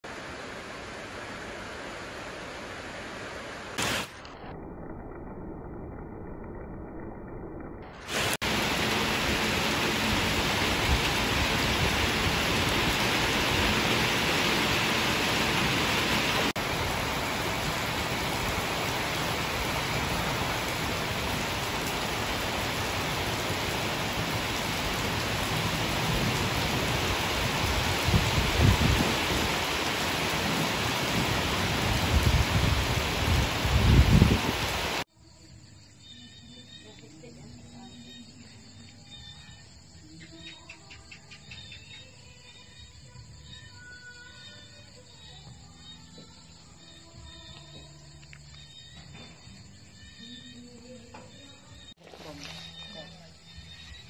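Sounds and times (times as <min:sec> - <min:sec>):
heavy rain pouring: 0:00.0 - 0:06.3, 0:07.8 - 0:35.1
low rumbles: 0:03.8 - 0:08.4.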